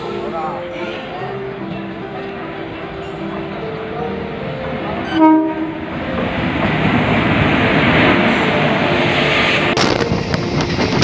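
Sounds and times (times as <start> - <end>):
train rumble approaching: 0.0 - 11.0
train horn blast: 5.0 - 5.9.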